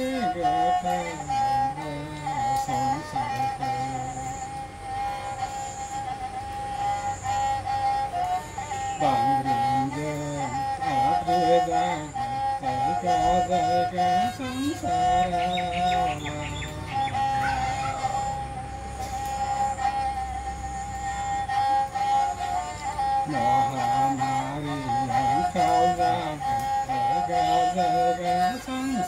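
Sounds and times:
bowed fiddle: 0.0 - 29.0.

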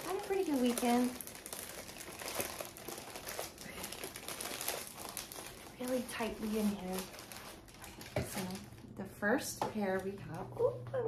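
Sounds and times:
plastic bag crinkling: 0.0 - 10.5.

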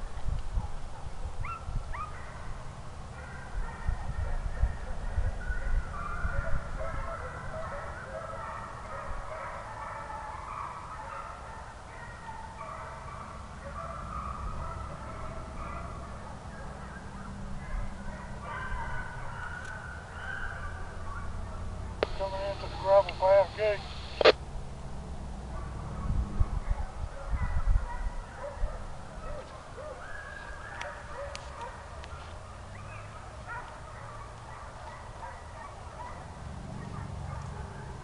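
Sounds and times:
wind rumbling on microphone: 0.0 - 8.1, 20.6 - 30.2
hounds baying: 0.6 - 24.4, 25.5 - 38.0.

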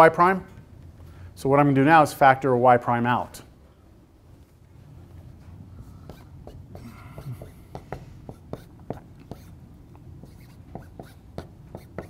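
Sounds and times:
marker writing on whiteboard: 6.0 - 12.0.

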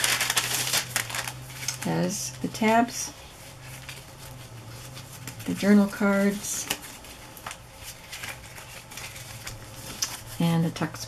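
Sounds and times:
plastic bag crinkling: 0.0 - 2.2, 3.3 - 10.4.

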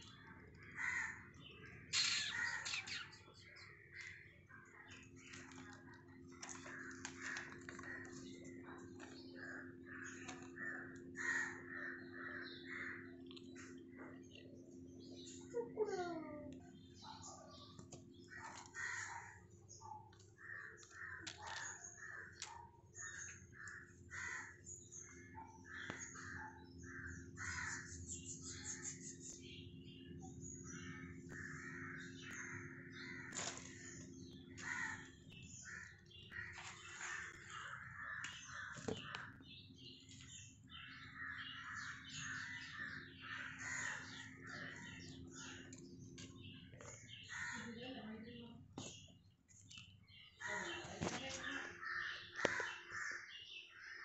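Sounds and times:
birds calling: 0.0 - 54.0.

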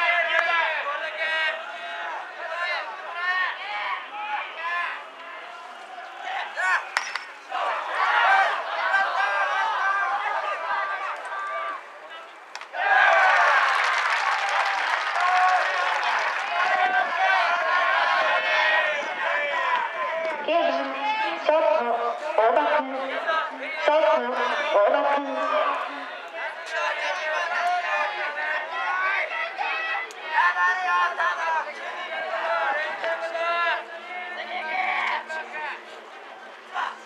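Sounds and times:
crowd shouting and cheering: 0.0 - 37.0.

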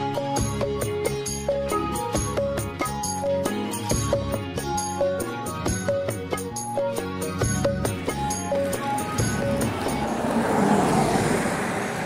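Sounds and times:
road vehicle passing by: 7.9 - 12.0.

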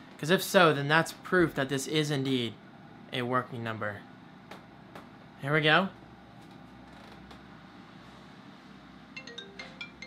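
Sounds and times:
phone ringtone melody: 9.2 - 10.0.

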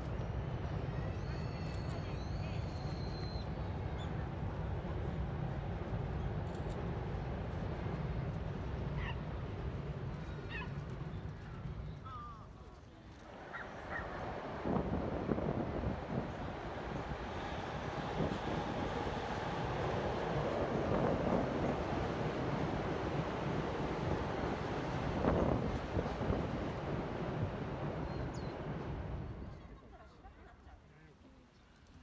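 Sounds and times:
train rumbling and rattling: 0.0 - 30.6.

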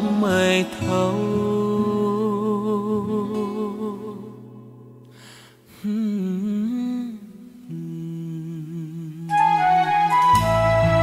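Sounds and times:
soft backing music: 0.0 - 4.6, 9.2 - 11.0
man humming a melody: 5.8 - 9.7.

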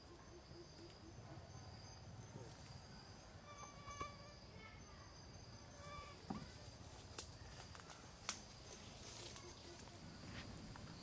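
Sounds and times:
insects droning: 0.0 - 11.0.

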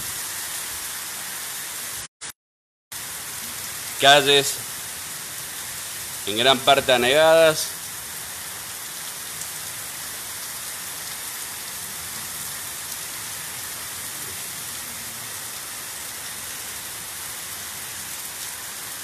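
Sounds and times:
heavy rain on flooded street: 0.0 - 2.1, 3.0 - 19.0.

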